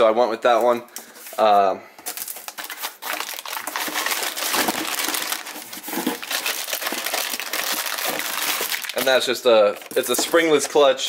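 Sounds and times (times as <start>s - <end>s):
plastic wrapping crinkling: 1.1s - 10.8s.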